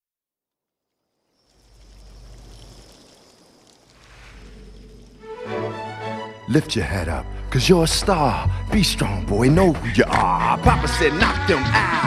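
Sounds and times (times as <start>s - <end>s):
soft hiss: 0.9s - 6.0s.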